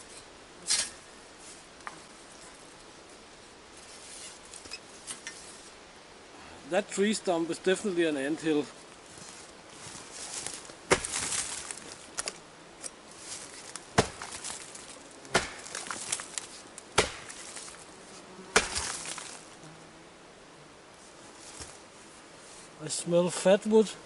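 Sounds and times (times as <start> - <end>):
wood splintering and crackling: 9.8 - 17.9, 18.5 - 19.6
axe chopping log: 10.9 - 12.4, 13.7 - 14.6, 15.3 - 17.8, 18.5 - 19.4.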